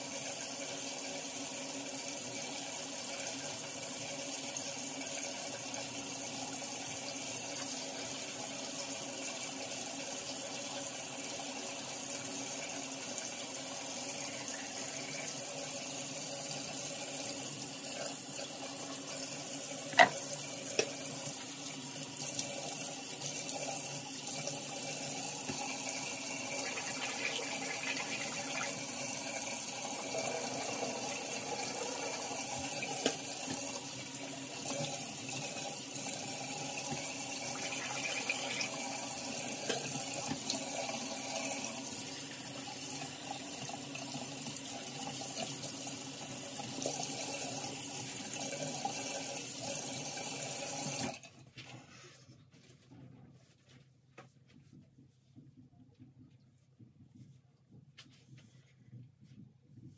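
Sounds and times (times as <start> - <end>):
sink tap running: 10.1 - 51.1.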